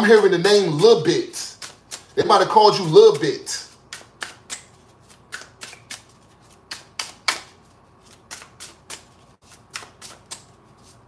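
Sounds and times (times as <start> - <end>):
cards being shuffled: 1.5 - 11.0.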